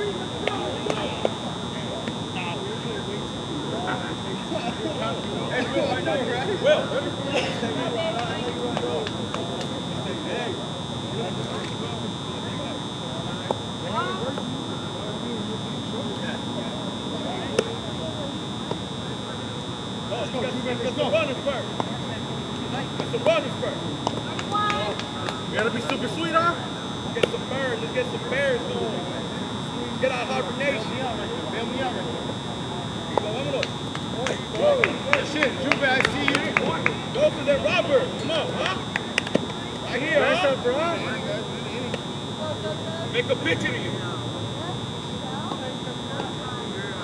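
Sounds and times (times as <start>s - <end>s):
high-pitched whine: 0.0s - 47.0s
people calling and chatting: 0.0s - 47.0s.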